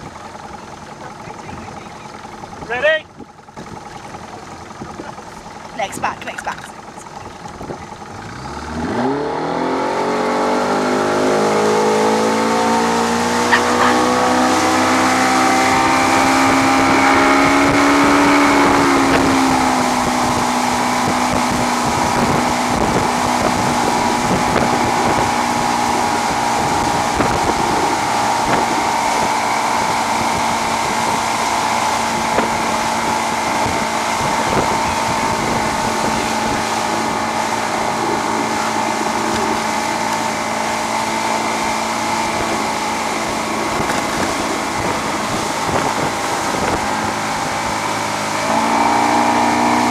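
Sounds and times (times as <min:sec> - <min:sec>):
motorboat engine revving: 0:00.0 - 0:49.9
water rushing: 0:00.0 - 0:49.9
hull knocking on waves: 0:43.2 - 0:47.6.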